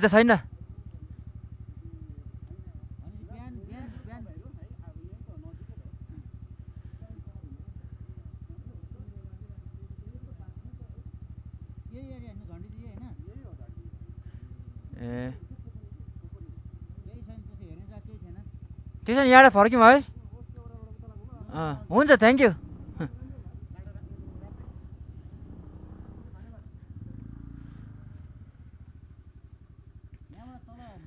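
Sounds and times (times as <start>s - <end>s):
motorcycle engine running: 0.0s - 31.0s.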